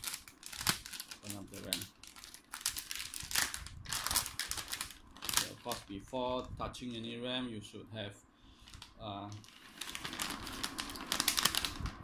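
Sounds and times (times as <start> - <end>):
anti-static bag crinkling: 0.0 - 7.2, 8.6 - 12.0.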